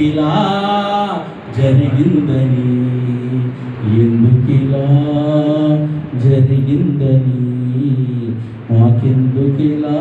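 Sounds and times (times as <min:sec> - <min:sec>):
man singing devotional song: 0:00.0 - 0:10.0.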